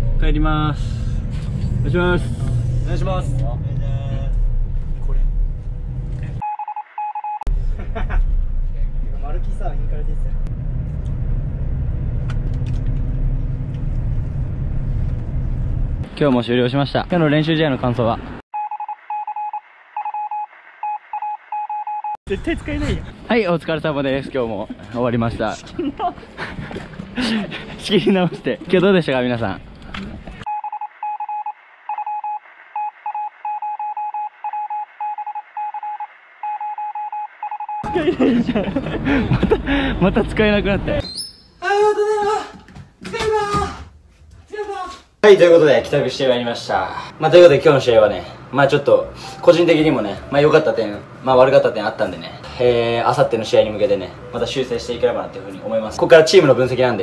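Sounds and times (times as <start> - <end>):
bus engine and road rumble: 0.0 - 6.4, 7.5 - 18.4, 22.3 - 30.5, 37.9 - 41.0, 46.0 - 57.0
short electronic beeps: 6.4 - 7.5, 18.6 - 22.2, 30.5 - 37.9
people talking: 8.7 - 10.4, 40.0 - 41.0, 44.5 - 57.0.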